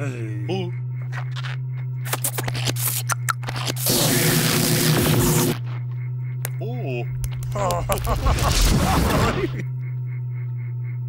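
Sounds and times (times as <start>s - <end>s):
low hum: 0.0s - 11.0s
scratchy clicks: 1.1s - 5.6s, 6.4s - 8.1s
crackling electric zap: 2.1s - 5.6s, 7.2s - 9.6s.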